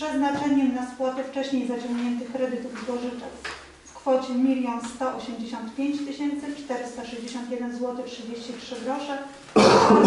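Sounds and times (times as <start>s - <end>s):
person speaking: 0.0s - 10.0s
loud cough: 9.6s - 10.0s.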